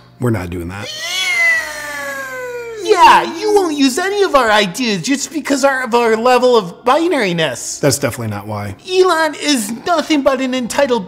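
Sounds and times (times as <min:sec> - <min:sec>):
man's falsetto wail: 0:00.8 - 0:03.6.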